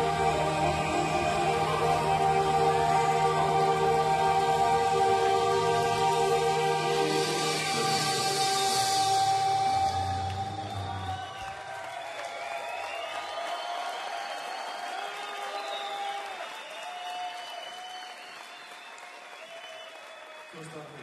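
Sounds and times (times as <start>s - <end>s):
live band closing chord: 0.0s - 11.6s
audience applauding and cheering: 0.0s - 21.0s.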